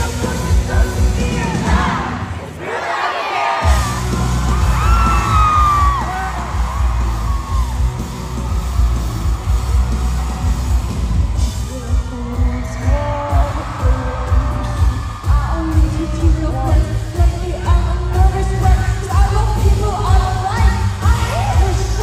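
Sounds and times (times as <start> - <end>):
live rock band playing: 0.0 - 2.0, 3.6 - 22.0
crowd screaming and whooping: 0.2 - 17.2.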